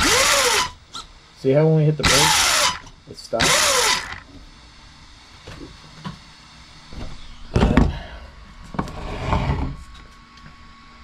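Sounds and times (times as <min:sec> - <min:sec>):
electric motor cutting off: 0:00.0 - 0:00.8, 0:02.0 - 0:04.3
faint steady hum: 0:00.0 - 0:11.0.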